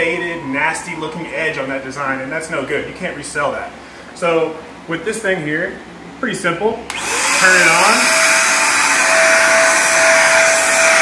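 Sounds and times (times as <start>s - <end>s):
electric sprayer hissing: 6.9s - 11.0s
sprayer motor whine: 6.9s - 11.0s.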